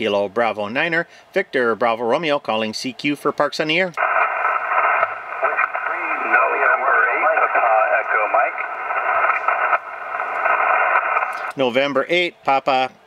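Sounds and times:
radio static hiss: 4.0s - 12.0s
voice over radio: 4.8s - 9.8s.

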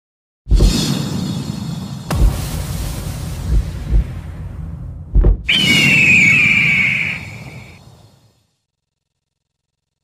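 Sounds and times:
low rumble: 2.1s - 5.5s
bird of prey screech: 5.5s - 7.8s.

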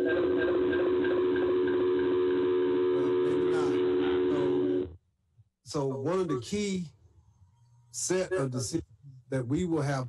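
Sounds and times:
steady low electronic tone: 0.0s - 5.0s.

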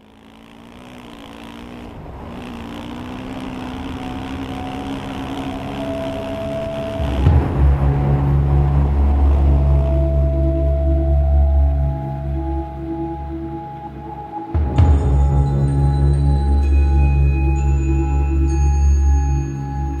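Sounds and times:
deep musical drone: 0.0s - 20.0s
dirt bike engine running: 0.0s - 20.0s
steady high tone: 2.4s - 20.0s.

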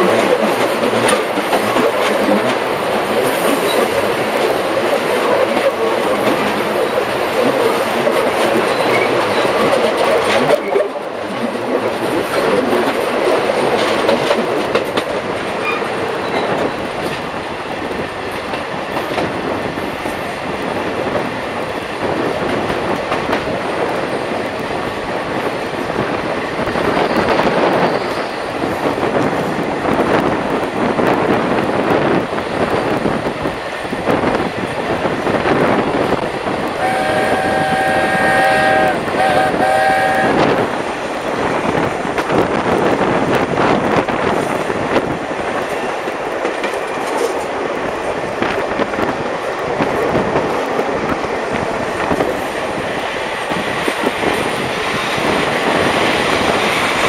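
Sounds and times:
train wheels clattering over rail joints: 0.0s - 57.0s
steam locomotive whistle: 36.8s - 40.6s.

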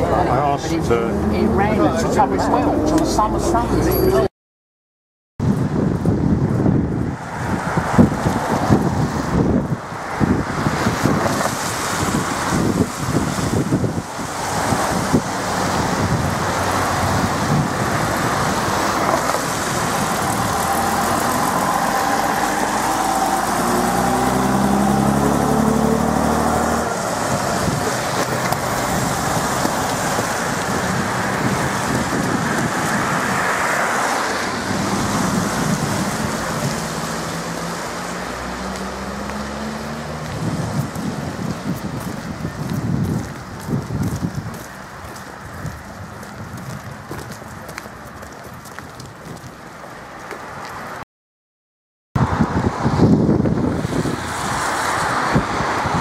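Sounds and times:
wind on microphone: 5.4s - 49.8s, 52.2s - 56.0s
tyres hissing on wet road: 7.2s - 47.3s, 52.8s - 56.0s
bus diesel engine accelerating: 14.7s - 46.6s.

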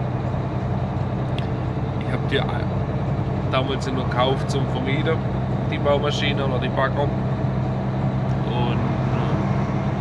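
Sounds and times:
vehicle engine and road drone: 0.0s - 10.0s.

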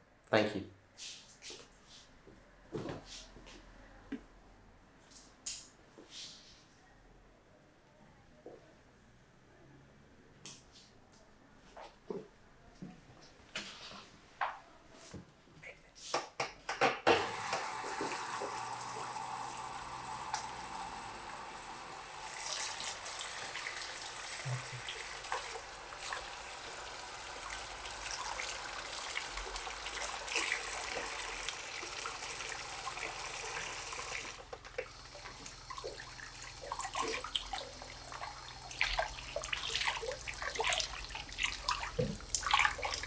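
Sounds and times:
tap water splashing into basin: 17.1s - 43.0s.

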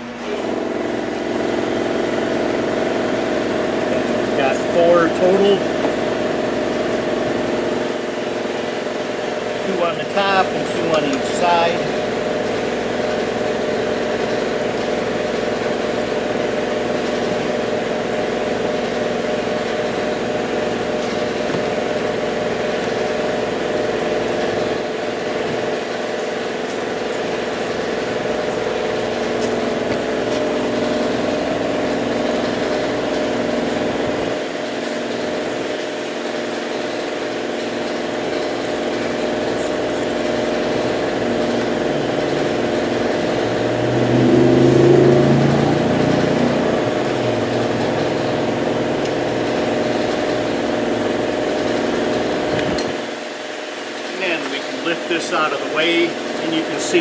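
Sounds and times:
steady mechanical hum: 0.0s - 57.0s.

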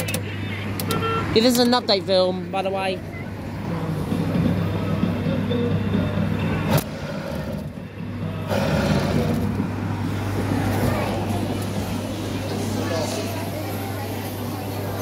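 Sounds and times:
faint ride tune: 0.0s - 15.0s.

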